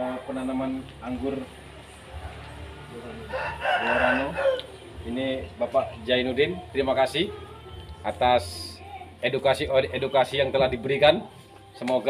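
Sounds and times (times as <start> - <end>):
rooster crowing: 3.0 - 5.1.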